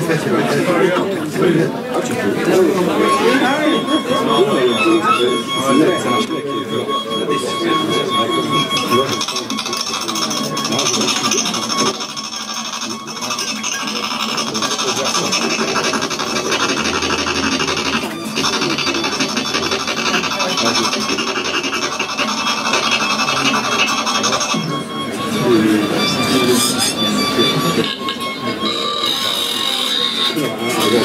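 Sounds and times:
steady high tones: 0.0s - 31.0s
objects scraping on tabletop: 9.2s - 31.0s.

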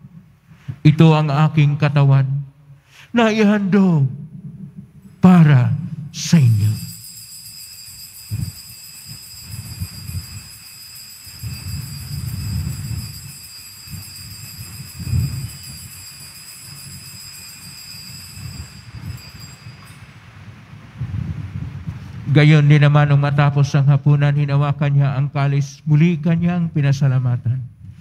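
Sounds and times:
low uneven rumble: 4.0s - 6.9s
altar bells ringing: 6.3s - 20.5s.

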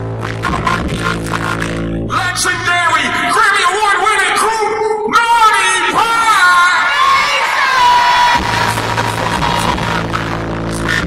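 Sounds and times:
low steady bass tone: 0.0s - 3.3s, 8.2s - 11.0s
live hip-hop music over sound system: 0.0s - 11.0s.

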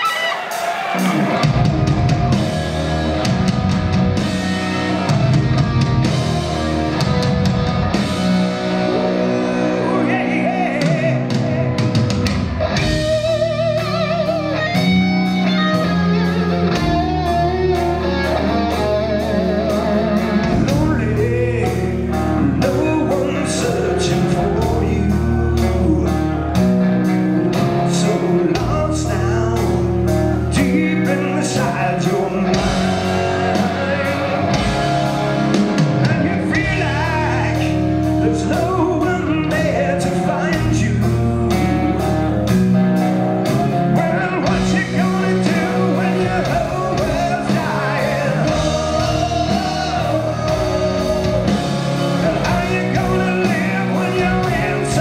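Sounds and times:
electric guitar chords: 0.0s - 55.0s
live rock band playing: 0.0s - 55.0s
man singing: 8.7s - 12.0s, 18.1s - 26.6s, 27.5s - 42.5s, 43.6s - 55.0s.

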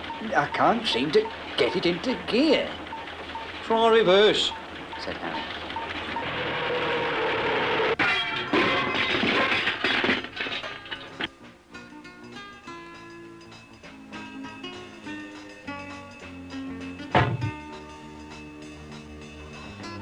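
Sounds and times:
toy car crashing to pieces: 8.0s - 11.3s.

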